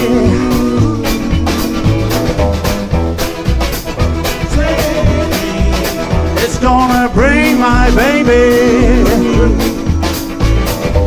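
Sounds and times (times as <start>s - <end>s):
accordion: 0.0s - 11.0s
drum beat: 0.0s - 11.0s
electric guitar: 0.0s - 11.0s
upright bass: 0.0s - 11.0s.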